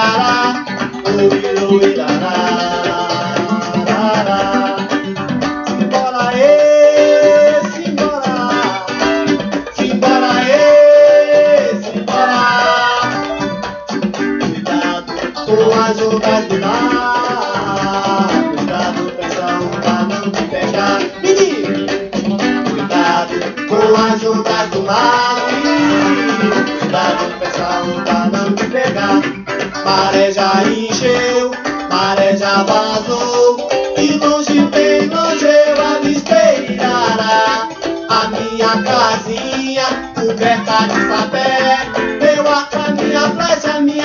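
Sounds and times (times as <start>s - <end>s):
plucked strings: 0.0s - 44.0s
vinyl record music: 0.0s - 44.0s.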